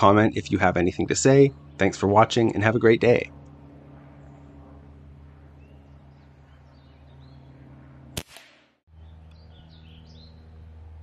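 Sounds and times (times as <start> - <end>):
birds chirping: 0.0 - 8.1, 8.9 - 11.0
air rifle shot: 8.2 - 8.8.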